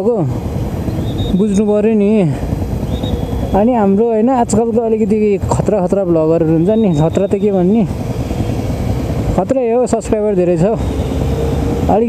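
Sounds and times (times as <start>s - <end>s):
street traffic: 0.0s - 12.0s
motorcycle engine idling: 0.4s - 12.0s
man talking: 1.3s - 2.5s, 3.5s - 7.9s, 9.4s - 10.8s.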